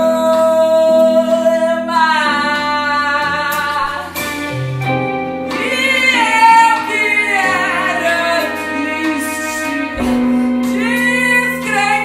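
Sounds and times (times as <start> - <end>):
woman singing: 0.0 - 4.6, 5.5 - 12.0
electric guitar: 0.0 - 12.0
keyboard: 0.0 - 12.0.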